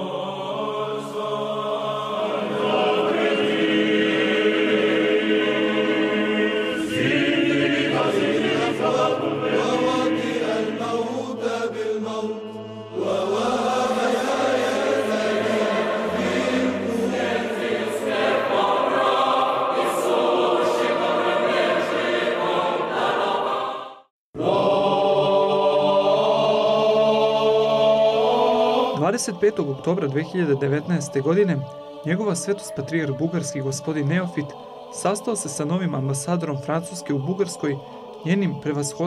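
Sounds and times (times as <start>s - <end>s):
church choir chanting: 0.0s - 39.0s.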